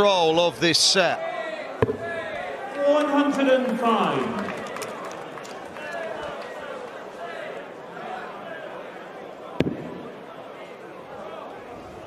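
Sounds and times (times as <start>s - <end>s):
crowd murmur: 1.2s - 12.0s.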